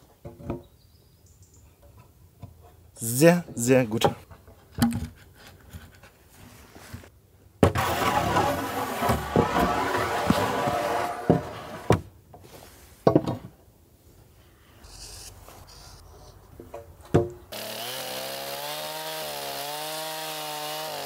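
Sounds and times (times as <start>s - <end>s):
wood scraping on wood: 7.8s - 13.0s.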